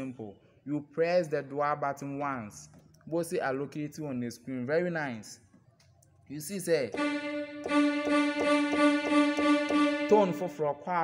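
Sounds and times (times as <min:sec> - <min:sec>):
keyboard held strings and choir note: 0:06.9 - 0:10.7.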